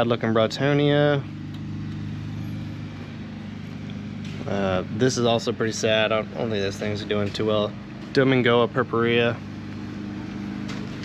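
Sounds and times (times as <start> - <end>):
motor running with low hum: 0.0 - 11.0.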